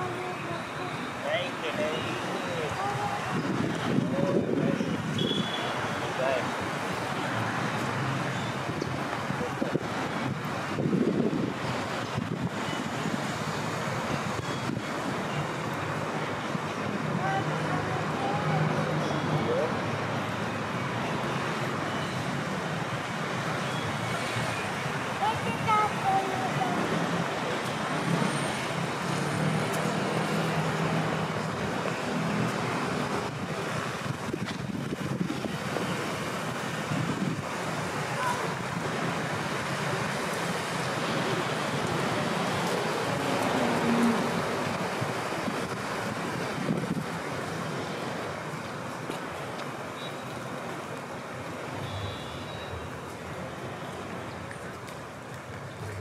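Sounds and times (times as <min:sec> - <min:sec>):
steady traffic noise: 0:00.0 - 0:56.0.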